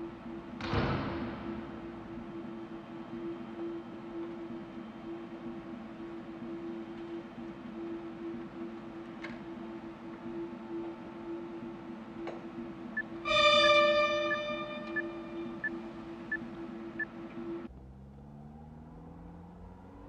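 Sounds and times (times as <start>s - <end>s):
low electronic drone: 0.0s - 17.7s.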